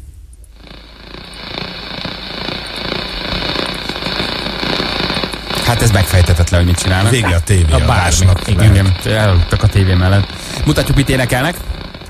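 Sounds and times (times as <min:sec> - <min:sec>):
rough rattling snoring: 0:00.5 - 0:12.0.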